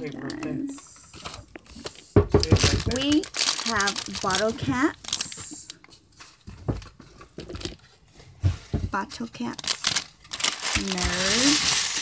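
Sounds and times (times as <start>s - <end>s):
plastic bag crinkling: 0.0s - 7.9s, 9.2s - 12.0s.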